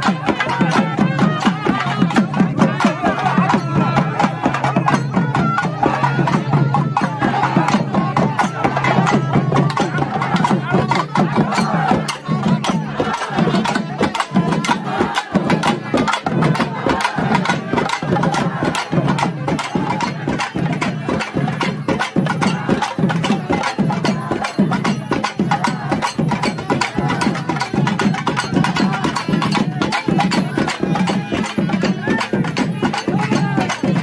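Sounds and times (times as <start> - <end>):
crowd shouting: 0.0 - 34.0
fast drumming: 0.0 - 34.0.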